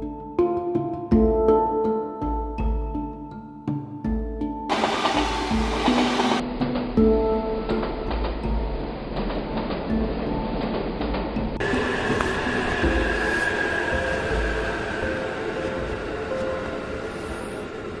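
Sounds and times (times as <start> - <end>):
train wheels rumbling on rails: 4.7 - 18.0
high whine: 11.6 - 18.0.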